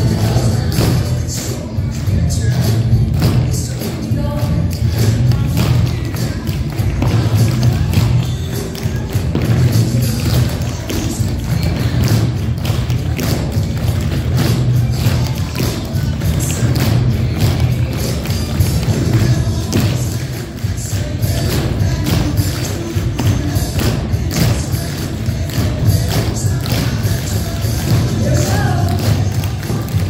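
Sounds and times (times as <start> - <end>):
dance music with bass: 0.0 - 30.0.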